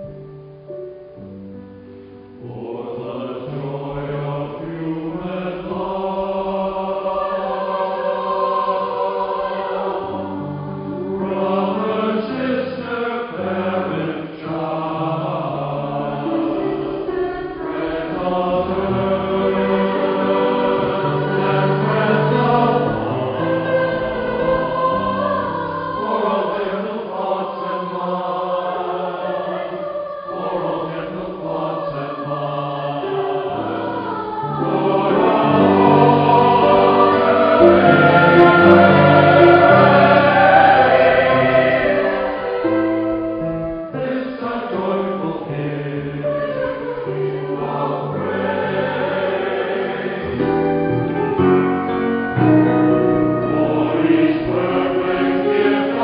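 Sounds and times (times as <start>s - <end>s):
choir singing: 2.4s - 56.0s.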